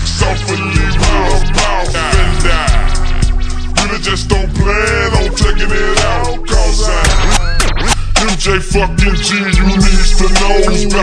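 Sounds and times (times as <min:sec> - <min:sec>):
slowed hip hop beat: 0:00.0 - 0:11.0
record scratching: 0:05.6 - 0:11.0.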